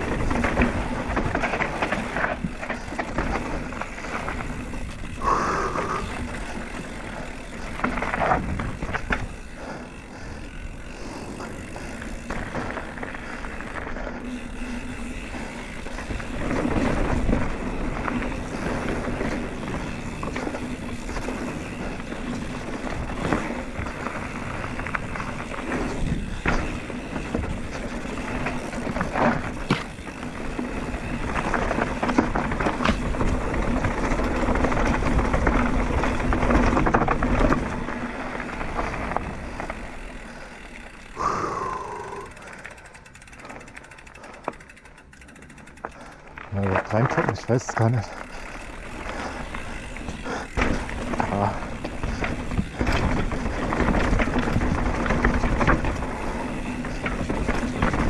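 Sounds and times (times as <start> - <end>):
bike knocking over roots: 0.0 - 9.9, 11.2 - 41.5, 45.8 - 58.0
mountain bike rattling: 0.0 - 58.0
tyres on dirt: 0.0 - 58.0.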